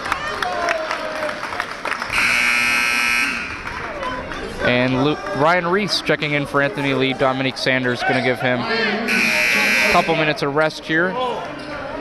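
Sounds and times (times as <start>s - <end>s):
court noise: 0.0s - 12.0s
voices: 0.4s - 12.0s
scoreboard horn buzz: 2.1s - 3.7s, 9.1s - 10.3s.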